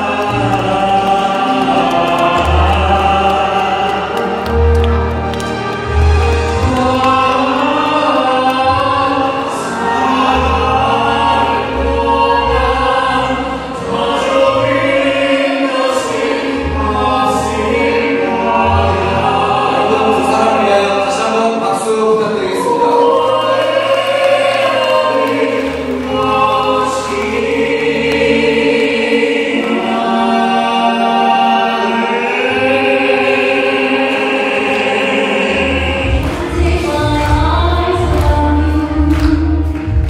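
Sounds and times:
instrumental accompaniment: 0:00.0 - 0:40.0
voices singing in harmony: 0:00.0 - 0:40.0.

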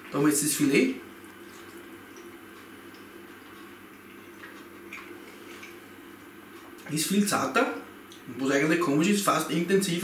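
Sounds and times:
steady low hum: 0:00.0 - 0:10.0
man chewing: 0:01.2 - 0:05.9.

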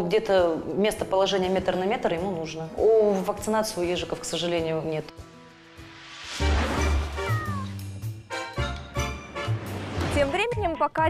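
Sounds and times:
cat meow sound effect: 0:07.0 - 0:07.8.

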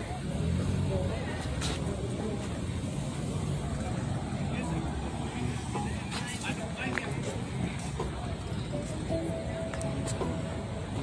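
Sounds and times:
people talking indistinctly: 0:00.8 - 0:10.5.

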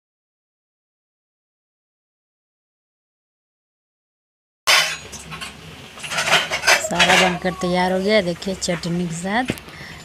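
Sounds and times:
food frying in hot oil: 0:04.7 - 0:10.0.

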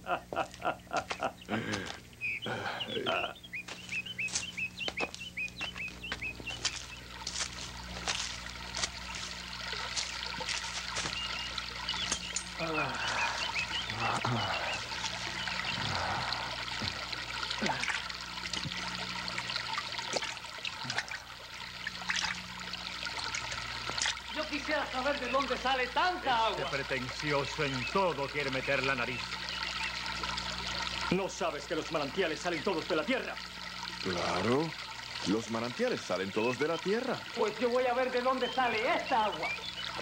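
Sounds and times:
water trickling and pouring: 0:01.8 - 0:40.0.

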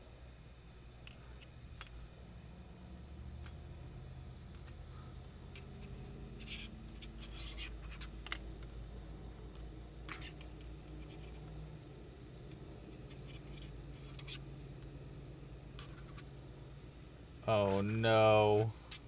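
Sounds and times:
low steady hum: 0:00.0 - 0:19.0
yarn rubbing and scratching: 0:17.6 - 0:19.0.

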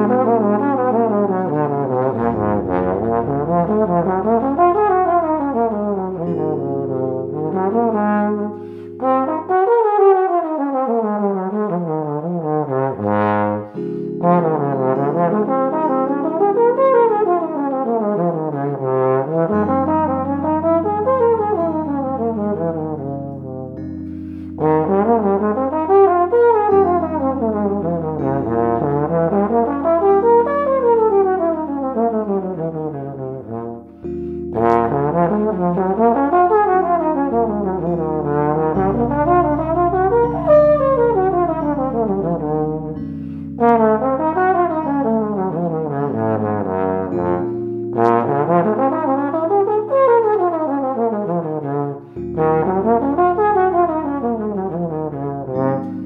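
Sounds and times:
low held chords: 0:00.0 - 0:11.7, 0:12.4 - 0:56.0
trombone playing jazz lines: 0:00.0 - 0:56.0.

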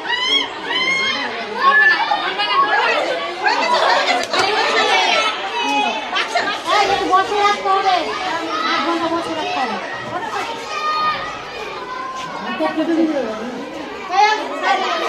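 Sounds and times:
women chattering: 0:00.0 - 0:15.0.

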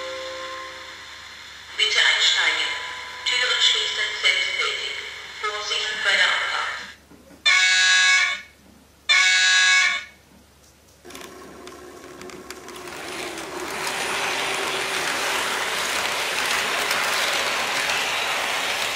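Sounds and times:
model train horn blasts: 0:07.5 - 0:08.4, 0:09.1 - 0:10.1
model train motor and wheels: 0:11.1 - 0:18.9.

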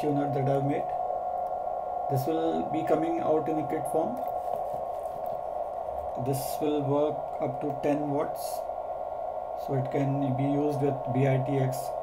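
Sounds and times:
radio receiver hiss: 0:00.0 - 0:12.0.

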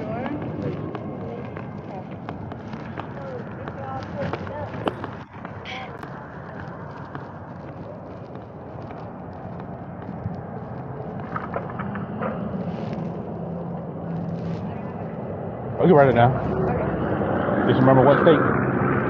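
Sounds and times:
faint scattered voices: 0:00.0 - 0:18.4
engine hum: 0:00.0 - 0:19.0
steady outdoor rumble: 0:00.0 - 0:19.0.

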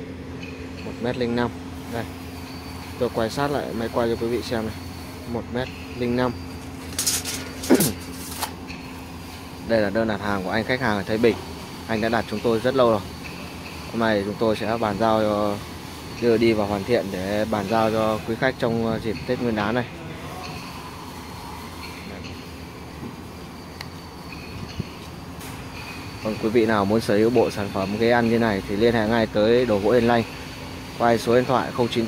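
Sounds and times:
tape measure retracting: 0:06.5 - 0:08.6.

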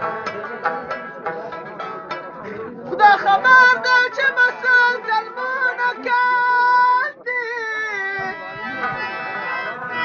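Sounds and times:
plucked string lute: 0:00.0 - 0:10.0.

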